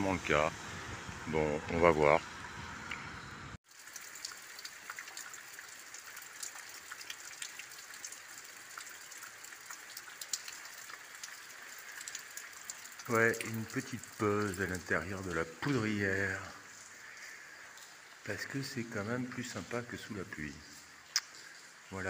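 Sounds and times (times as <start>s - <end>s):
light rain falling: 0.0s - 22.0s.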